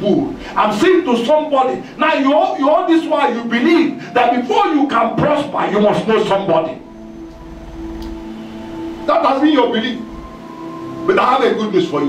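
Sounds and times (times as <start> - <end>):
keyboard sustained chord: 0.0 - 12.0
low rumble: 6.2 - 10.6
faint click: 8.0 - 8.2.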